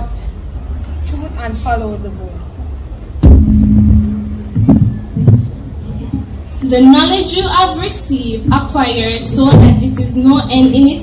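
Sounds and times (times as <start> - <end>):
low rumble and hum: 2.6 - 6.7
microphone thumps: 3.2 - 6.3.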